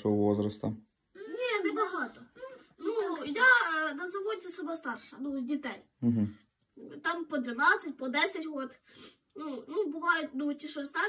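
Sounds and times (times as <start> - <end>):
child's wavering wordless voice: 1.2 - 6.2, 6.8 - 11.0.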